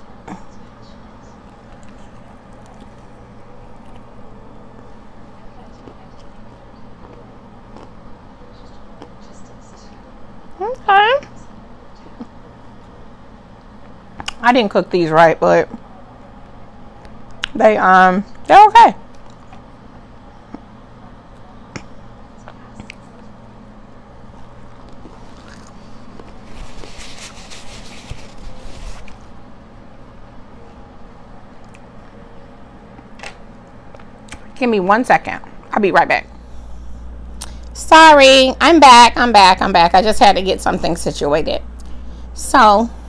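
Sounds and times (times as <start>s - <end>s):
steady low hum: 0.0s - 43.0s
person chewing food: 5.8s - 8.0s, 24.4s - 27.9s.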